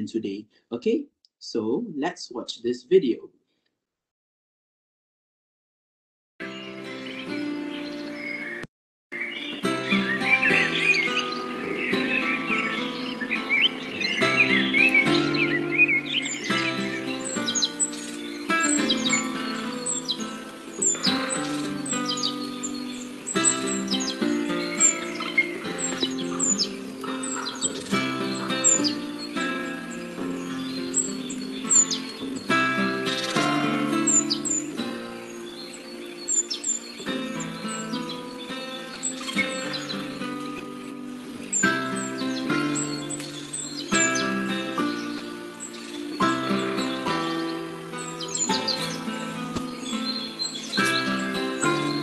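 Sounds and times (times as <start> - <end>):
songbird chirping: 0.0 - 3.3, 6.4 - 52.0
calm music with held chords: 6.4 - 8.6, 9.2 - 52.0.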